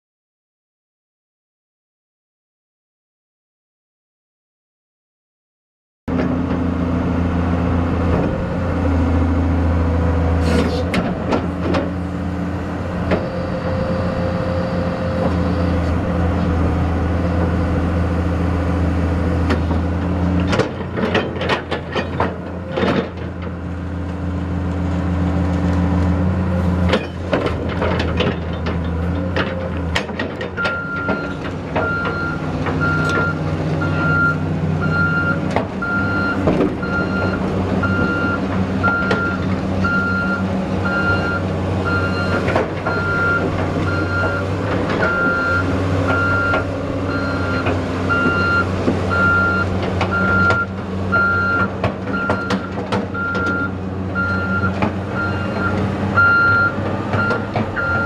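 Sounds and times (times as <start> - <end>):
excavator diesel engine running: 6.1 - 58.0
machine clanks and knocks: 20.4 - 23.6, 26.9 - 33.3, 35.4 - 39.6, 49.8 - 53.6, 56.8 - 58.0
travel alarm beeping: 30.6 - 44.4, 45.1 - 58.0.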